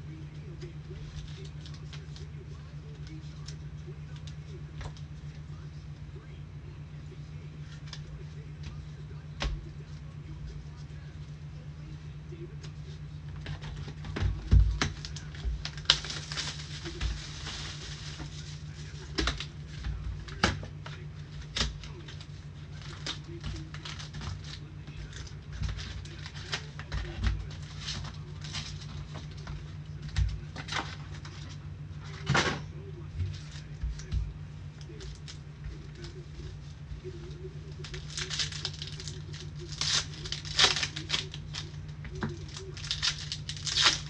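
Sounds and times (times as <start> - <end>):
steady low hum: 0.0 - 44.0
plastic wrappers crinkling: 0.4 - 5.4, 13.4 - 32.4, 34.8 - 44.0.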